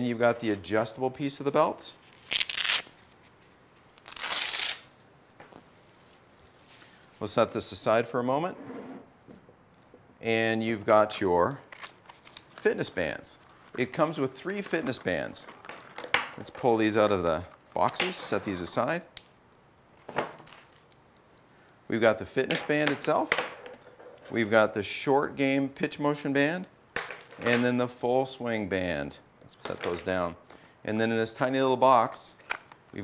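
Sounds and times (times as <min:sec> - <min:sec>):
hook-and-loop fastener ripping: 0:02.1 - 0:03.1, 0:04.0 - 0:04.9.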